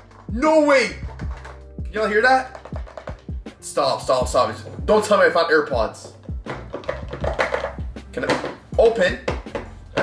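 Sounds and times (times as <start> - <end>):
background music with gliding bass: 0.0 - 10.0.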